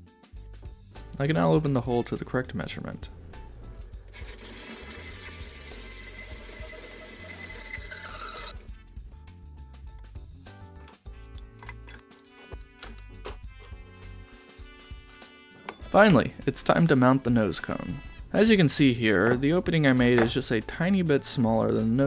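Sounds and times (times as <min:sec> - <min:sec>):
background music: 0:00.0 - 0:22.0
milling machine running: 0:04.0 - 0:08.5.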